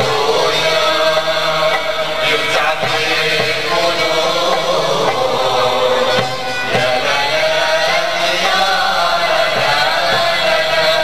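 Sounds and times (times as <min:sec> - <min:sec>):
chorus singing in unison: 0:00.0 - 0:11.0.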